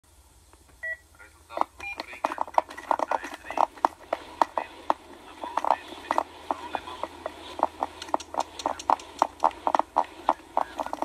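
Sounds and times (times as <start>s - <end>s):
two-tone electronic beeps: 1.8s - 2.3s.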